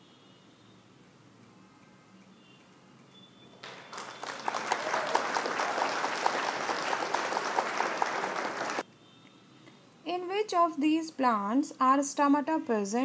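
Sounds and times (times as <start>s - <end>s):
crowd clapping: 3.6s - 8.8s.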